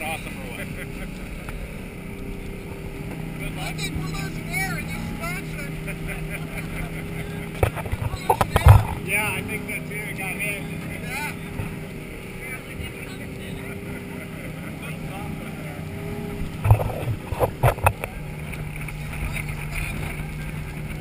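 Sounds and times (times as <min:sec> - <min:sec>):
boat engine running: 0:00.0 - 0:21.0
wind and water rushing: 0:00.0 - 0:21.0
loud thumps: 0:07.6 - 0:09.0.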